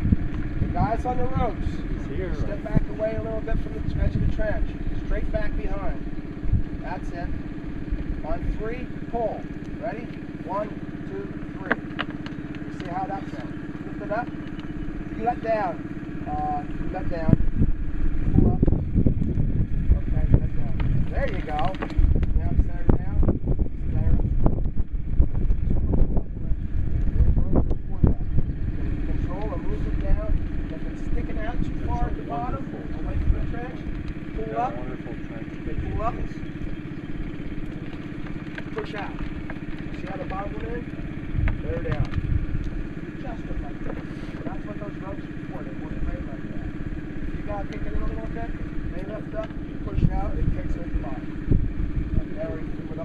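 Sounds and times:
engine humming: 0.0 - 53.0
low rumbling: 0.0 - 53.0.

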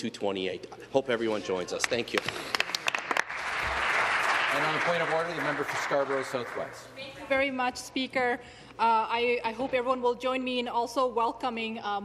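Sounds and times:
people applauding: 1.8 - 6.9.

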